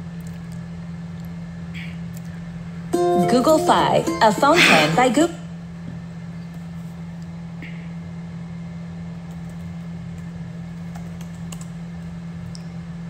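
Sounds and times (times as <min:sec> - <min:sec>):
steady low hum: 0:00.0 - 0:13.0
faint clicks and taps: 0:09.2 - 0:11.8.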